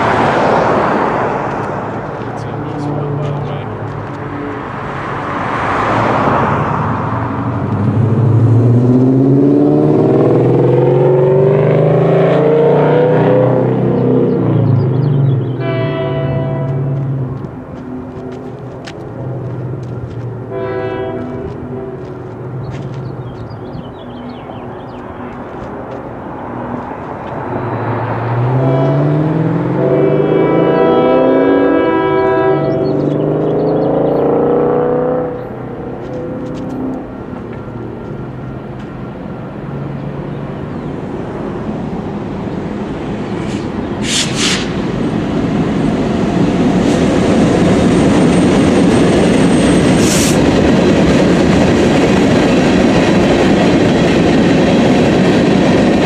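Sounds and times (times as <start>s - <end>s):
vehicles accelerating: 0.0s - 56.0s
train horn blasts: 15.6s - 17.2s, 20.5s - 22.2s, 28.4s - 33.1s.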